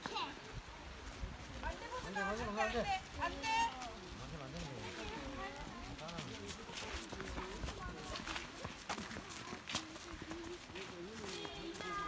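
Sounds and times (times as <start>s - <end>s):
footsteps on sandy dirt path: 0.0s - 12.0s
people talking: 4.6s - 12.0s.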